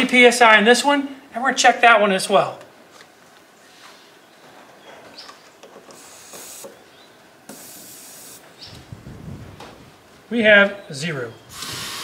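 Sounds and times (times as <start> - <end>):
air hissing: 5.9 - 6.8, 7.5 - 8.4, 11.5 - 12.0.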